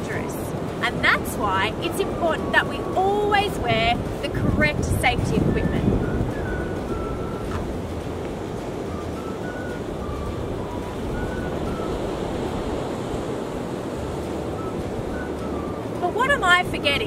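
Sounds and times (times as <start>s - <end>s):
ocean surf: 0.0s - 17.0s
wind noise on microphone: 0.0s - 17.0s.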